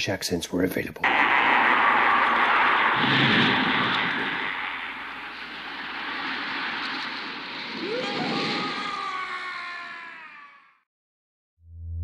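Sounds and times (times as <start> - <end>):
low rumble: 1.1 - 9.3
loud rushing noise: 1.1 - 10.0
rising tone: 1.1 - 10.7.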